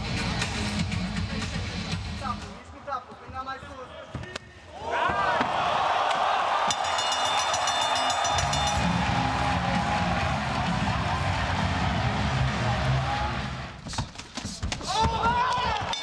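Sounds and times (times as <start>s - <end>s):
crowd cheering loudly: 4.7s - 13.8s, 14.9s - 16.0s.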